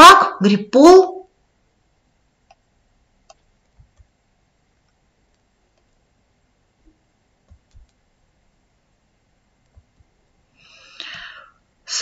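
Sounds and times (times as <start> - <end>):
faint room hiss: 0.0 - 12.0
computer mouse clicks: 2.4 - 4.1, 4.8 - 6.0, 7.4 - 8.0, 9.6 - 10.1.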